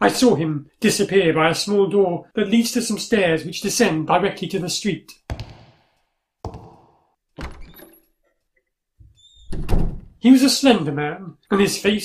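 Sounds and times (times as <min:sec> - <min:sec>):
heavy thuds with echo: 0:05.3 - 0:05.9.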